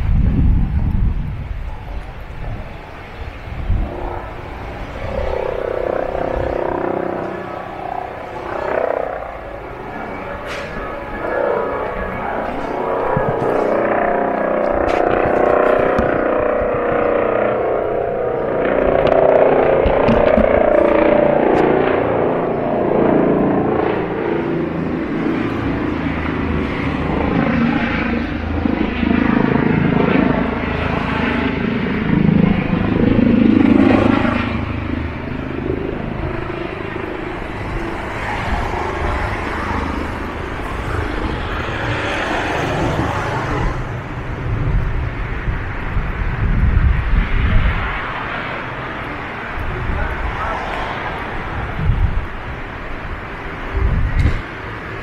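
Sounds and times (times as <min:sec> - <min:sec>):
motor vehicle engine noise: 0:00.0 - 0:55.0.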